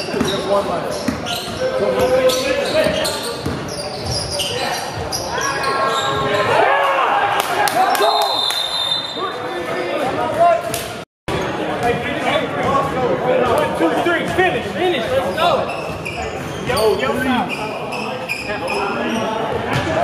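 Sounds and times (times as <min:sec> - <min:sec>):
basketball bouncing on hardwood floor: 0:02.8 - 0:04.2.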